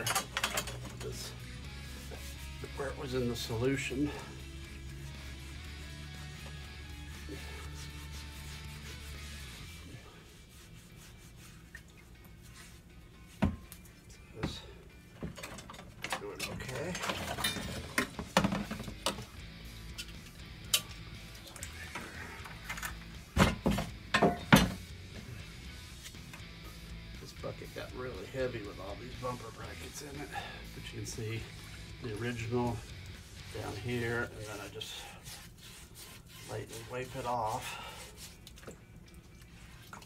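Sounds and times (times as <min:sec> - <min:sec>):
metal brackets knocking and clinking: 0:00.0 - 0:01.2, 0:22.7 - 0:24.8
quiet background music: 0:00.0 - 0:40.0.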